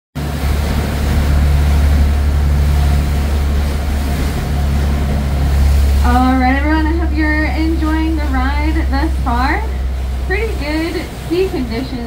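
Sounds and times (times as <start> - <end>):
boat engine droning: 0.2 - 12.0
rush of wind and water: 0.2 - 12.0.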